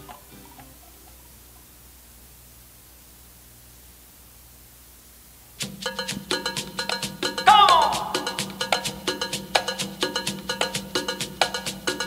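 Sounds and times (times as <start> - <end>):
salsa percussion music: 5.6 - 12.0.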